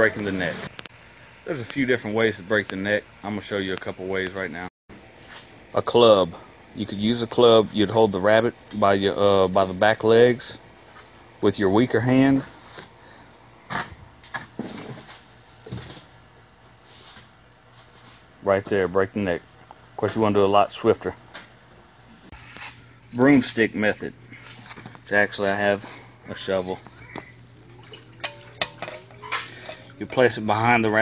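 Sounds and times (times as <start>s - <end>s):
low steady hum: 0.0s - 31.0s.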